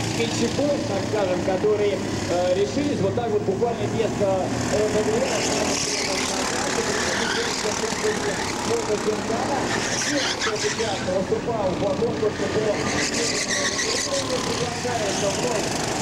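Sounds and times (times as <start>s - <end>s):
go-kart engines revving: 0.0s - 16.0s.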